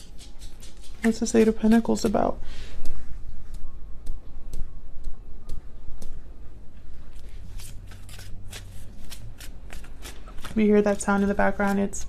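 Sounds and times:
cards being shuffled: 0:07.1 - 0:12.0.

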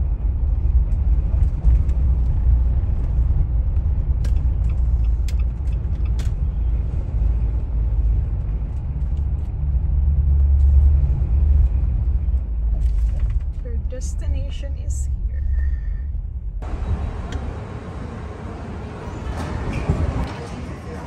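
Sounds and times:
road traffic rumble: 0:00.0 - 0:21.0
people's voices: 0:16.6 - 0:21.0.

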